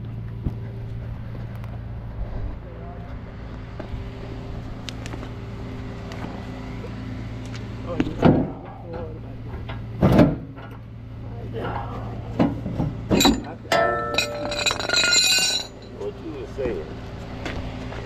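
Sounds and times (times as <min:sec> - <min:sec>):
steady low hum: 0:00.0 - 0:18.0
metallic rattle: 0:13.1 - 0:15.9
chain and hooks clinking: 0:13.1 - 0:16.0.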